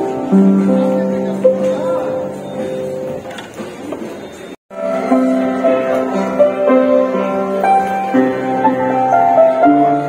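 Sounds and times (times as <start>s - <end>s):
grand piano notes ringing: 0.0s - 3.3s, 4.7s - 10.0s.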